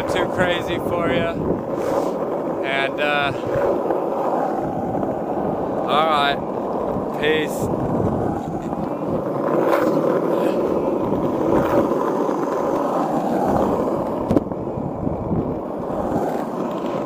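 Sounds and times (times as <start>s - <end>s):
skateboard wheels on asphalt: 0.0s - 17.0s.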